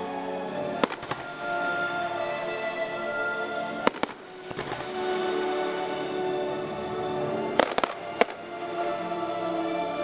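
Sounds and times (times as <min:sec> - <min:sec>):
music with long held tones: 0:00.0 - 0:10.0
firework bang: 0:07.6 - 0:08.4.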